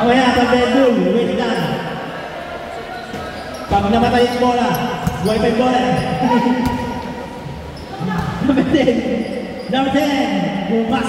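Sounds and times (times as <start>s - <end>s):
man speaking: 3.7s - 6.7s.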